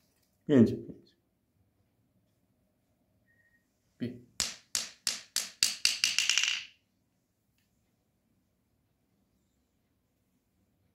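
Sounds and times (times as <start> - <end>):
ball bouncing on marble table: 4.4 - 6.8.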